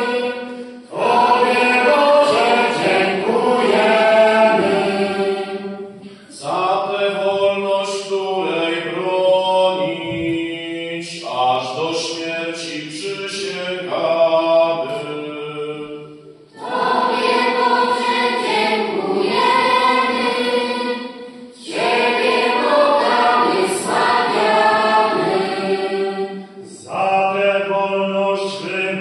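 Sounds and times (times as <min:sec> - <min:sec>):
children's choir singing: 0:00.0 - 0:29.0.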